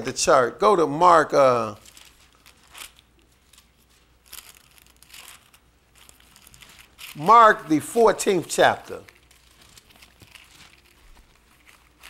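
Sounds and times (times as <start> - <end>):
pages being turned: 1.8 - 7.3, 8.9 - 12.0.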